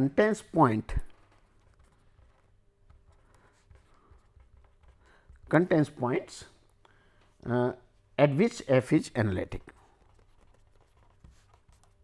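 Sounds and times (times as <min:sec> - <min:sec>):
pen scratching on paper: 0:01.1 - 0:05.6, 0:09.7 - 0:12.0.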